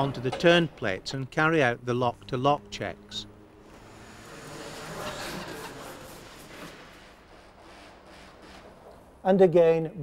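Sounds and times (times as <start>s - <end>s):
wheel scraping on turn plate: 3.7s - 6.9s.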